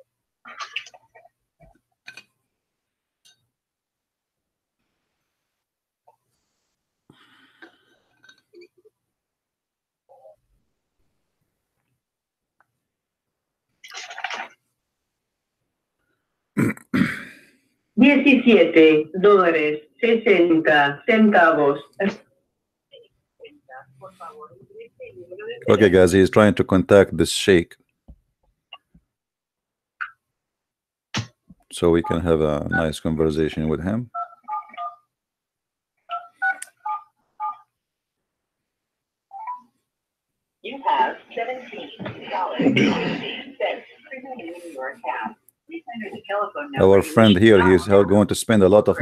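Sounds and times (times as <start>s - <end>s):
person clearing throat: 16.6s - 17.4s, 42.6s - 43.4s.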